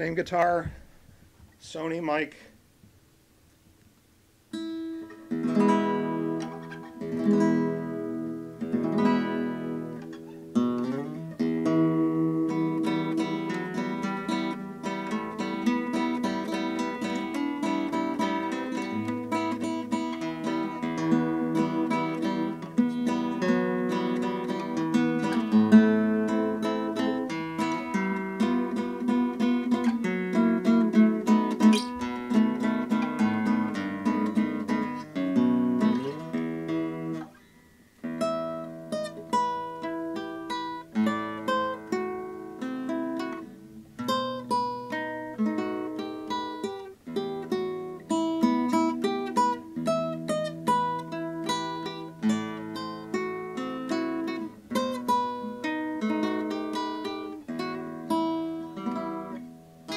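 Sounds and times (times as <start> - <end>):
classical guitar fingerstyle: 4.5 - 59.9.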